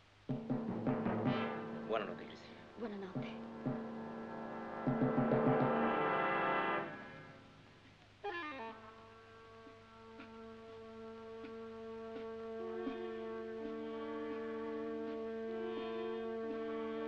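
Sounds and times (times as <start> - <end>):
drum strokes: 0.0 - 7.5, 11.3 - 15.6
orchestral brass chords: 0.8 - 2.8, 3.4 - 7.6, 8.8 - 17.0.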